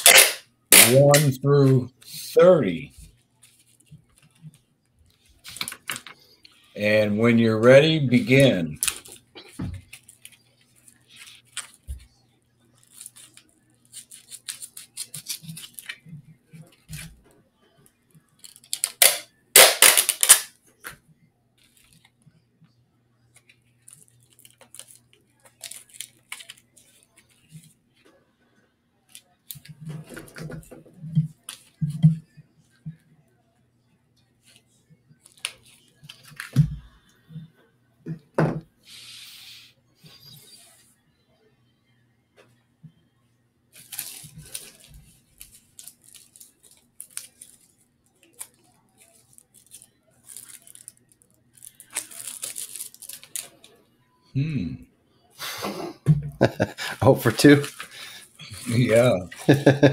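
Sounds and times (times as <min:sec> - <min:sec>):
faint hum: 0:20.5 - 0:59.9.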